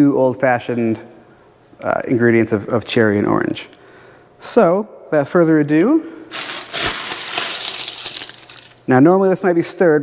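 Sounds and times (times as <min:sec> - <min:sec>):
ice cubes clinking against metal: 0:06.3 - 0:08.9.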